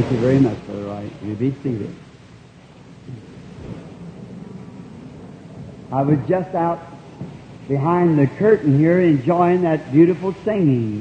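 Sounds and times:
tape hiss: 0.0 - 11.0
shuffling and rustling rumble: 3.1 - 7.7.

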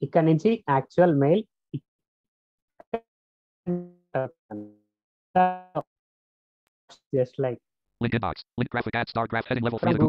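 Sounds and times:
synthesized voice blips: 8.0 - 10.0.

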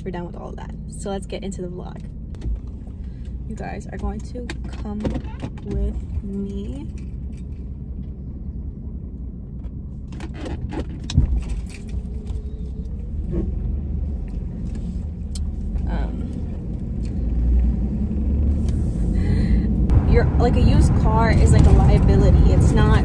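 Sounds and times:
engine and road rumble: 0.0 - 23.0.

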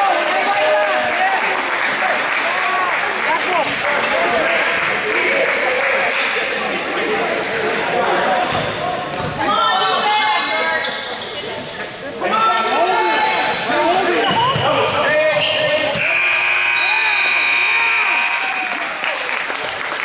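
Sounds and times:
players' voices echoing: 0.0 - 19.3
sneakers squeaking on court: 6.9 - 10.0, 12.6 - 16.6.

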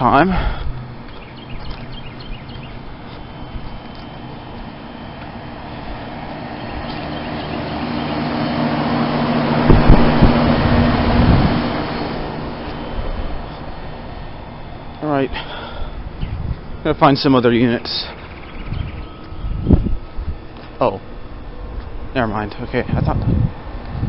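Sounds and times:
heat pump fan and compressor hum: 0.0 - 24.0.

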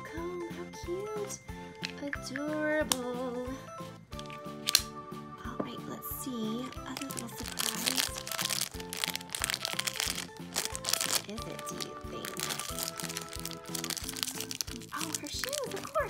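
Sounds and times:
background music with steady beat: 0.0 - 16.0
wrapper tearing and crumpling: 6.7 - 16.0.

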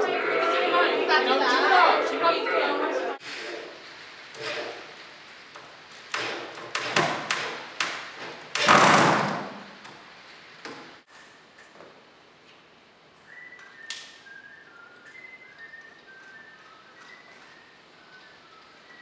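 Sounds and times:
faint high notes: 0.0 - 3.7.

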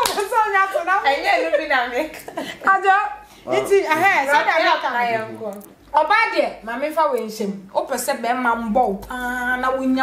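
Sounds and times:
woman talking animatedly: 0.0 - 10.0.

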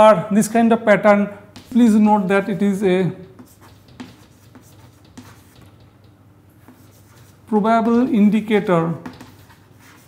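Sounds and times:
chalk tapping: 1.5 - 2.3, 3.2 - 10.0
chalk scratching on chalkboard: 1.6 - 2.1, 3.2 - 5.9, 6.6 - 10.0.

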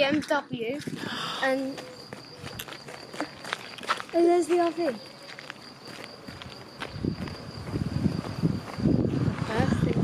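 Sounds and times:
footsteps on paved road: 0.0 - 10.0.

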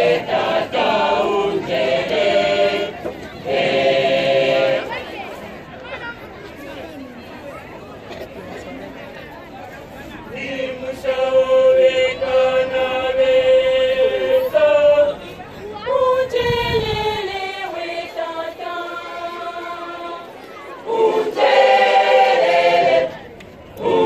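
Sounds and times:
choir singing: 0.0 - 5.0, 10.3 - 24.0
murmuring voices: 0.0 - 24.0.

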